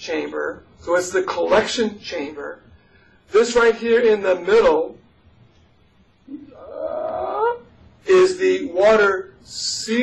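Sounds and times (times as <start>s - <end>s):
person saying uhh: 6.3s - 7.6s.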